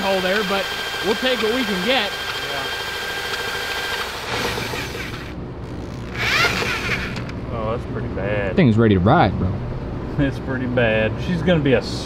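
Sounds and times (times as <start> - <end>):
cordless drill turning engine: 0.0 - 7.4.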